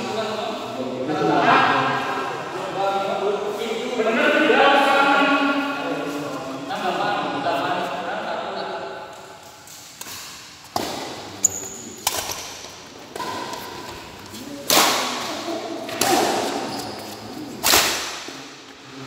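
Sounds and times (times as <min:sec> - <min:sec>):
rackets hitting shuttlecock: 0:09.7 - 0:18.6
shoes squeaking on court: 0:11.4 - 0:12.0, 0:16.4 - 0:17.6.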